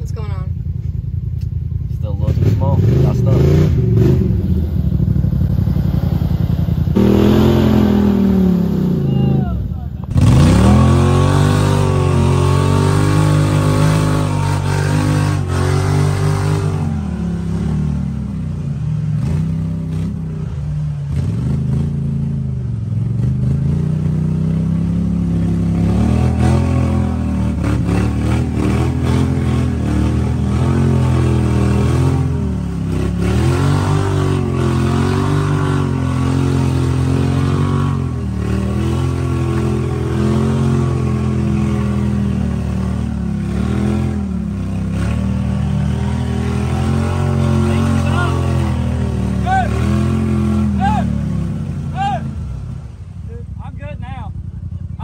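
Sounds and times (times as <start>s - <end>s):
off-road vehicle engine revving: 1.3s - 55.0s.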